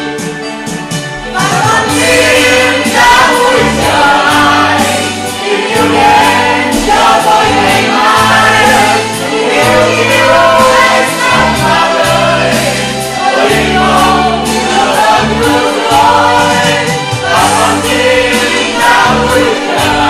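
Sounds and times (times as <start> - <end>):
instrumental accompaniment with bass: 0.0 - 20.0
choir singing: 1.2 - 20.0.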